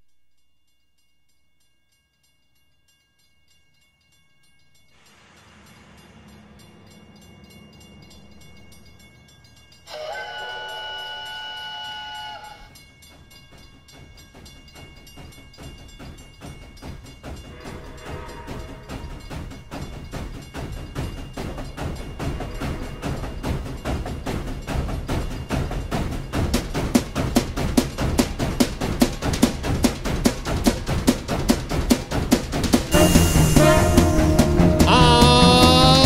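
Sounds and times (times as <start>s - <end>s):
music: 0.0s - 36.0s
chime steam whistle: 4.6s - 24.4s, 32.9s - 36.0s
steam locomotive chuffing: 5.0s - 36.0s.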